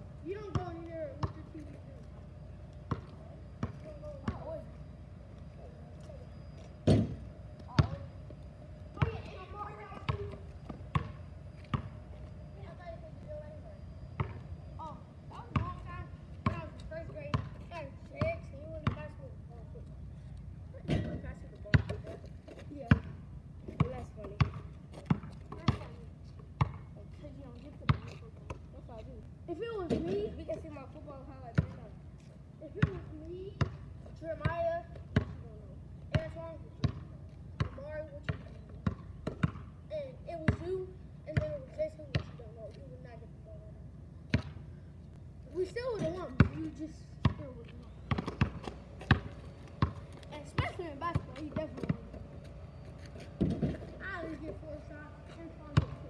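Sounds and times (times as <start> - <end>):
basketball bouncing on asphalt: 0.0 - 19.8, 20.4 - 43.1, 44.2 - 44.8, 45.6 - 56.0.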